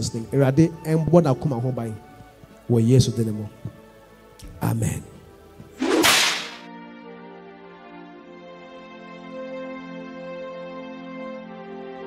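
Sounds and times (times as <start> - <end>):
soft background music chords: 0.0 - 12.0.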